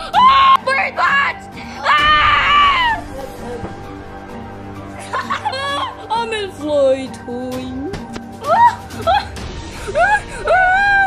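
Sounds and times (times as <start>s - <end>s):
child screaming: 0.1s - 3.0s.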